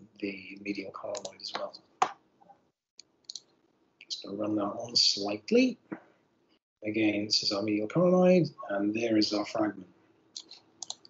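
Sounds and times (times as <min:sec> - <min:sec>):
computer mouse clicks: 0:10.4 - 0:11.0.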